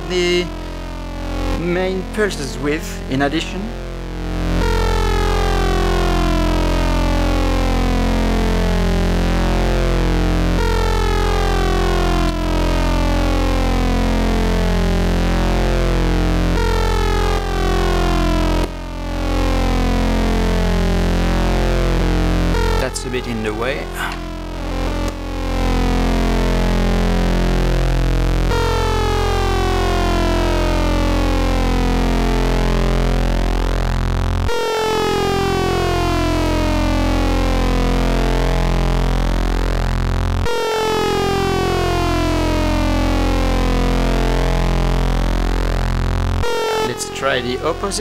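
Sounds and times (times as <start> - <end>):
buzzy low synthesizer drone: 0.0 - 48.0.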